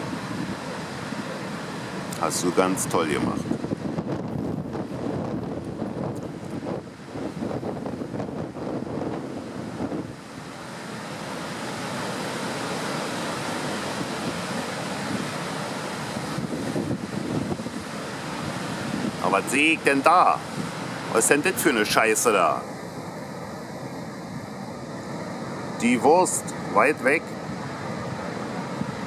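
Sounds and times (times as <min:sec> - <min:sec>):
wind buffeting microphone: 0:02.0 - 0:10.8, 0:13.6 - 0:21.0.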